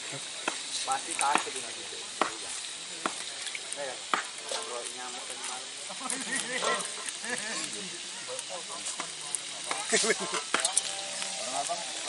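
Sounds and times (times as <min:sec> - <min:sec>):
chicken sizzling in hot oil: 0:00.0 - 0:12.0
utensils clicking on pan: 0:00.0 - 0:12.0.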